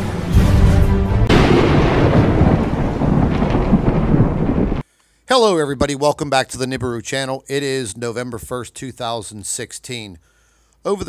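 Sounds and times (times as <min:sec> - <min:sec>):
thunderclap with rolling rumble: 0:01.3 - 0:04.8.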